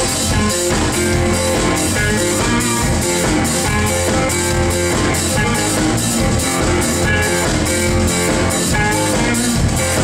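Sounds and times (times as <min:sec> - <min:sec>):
drum kit beat: 0:00.0 - 0:10.0
guitars: 0:00.0 - 0:10.0.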